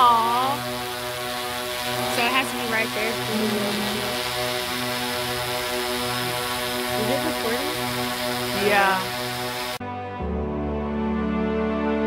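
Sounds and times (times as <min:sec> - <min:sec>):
drone propellers humming: 0:00.0 - 0:09.8
person speaking: 0:01.8 - 0:04.2, 0:07.0 - 0:07.8, 0:08.5 - 0:09.1.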